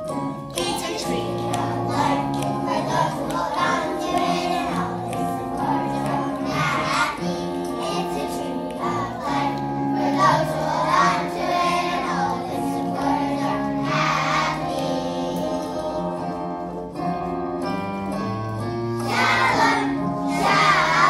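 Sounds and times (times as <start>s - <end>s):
musical accompaniment: 0.0s - 21.0s
children singing: 0.6s - 16.4s, 19.0s - 21.0s.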